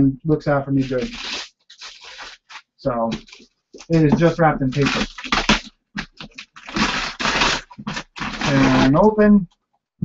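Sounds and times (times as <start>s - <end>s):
paper wrapping tearing: 0.8s - 9.0s.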